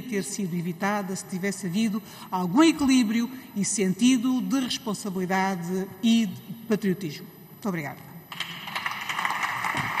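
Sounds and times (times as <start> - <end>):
hands clapping: 8.3 - 10.0.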